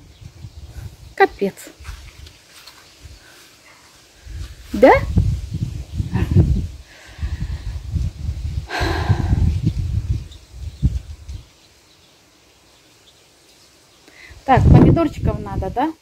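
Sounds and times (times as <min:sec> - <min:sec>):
wind buffeting microphone: 0:00.0 - 0:02.4, 0:04.2 - 0:11.6, 0:14.4 - 0:15.9.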